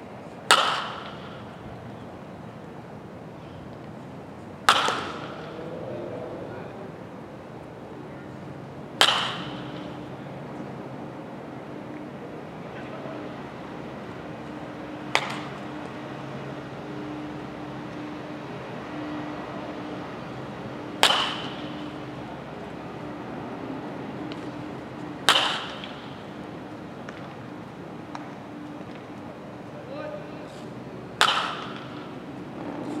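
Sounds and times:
baseball bat hitting ball: 0.5 - 1.5, 4.6 - 5.7, 9.0 - 10.2, 15.0 - 16.2, 20.9 - 22.2, 25.2 - 27.4, 31.2 - 32.2.

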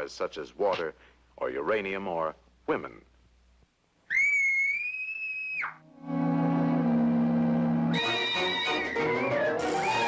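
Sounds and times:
cartoon woman screaming: 4.1 - 5.8.

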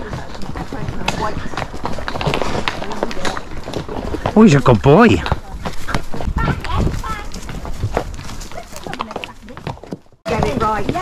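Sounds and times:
hooves clip-clopping on stones: 0.0 - 11.0.

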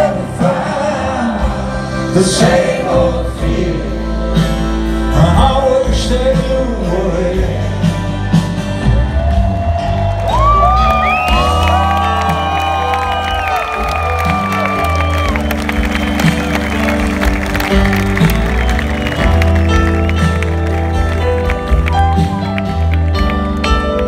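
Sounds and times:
live rock band playing loudly: 0.0 - 24.0
sliding lead melody: 10.4 - 24.0.

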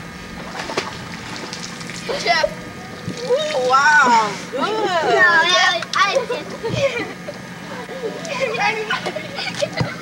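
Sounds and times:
low steady hum: 0.0 - 10.0
faint water sounds: 0.3 - 9.8.

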